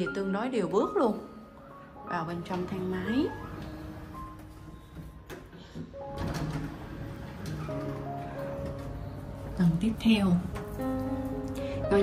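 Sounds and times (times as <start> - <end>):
background music with held notes: 0.0 - 12.0
elevator doors sliding: 0.0 - 12.0.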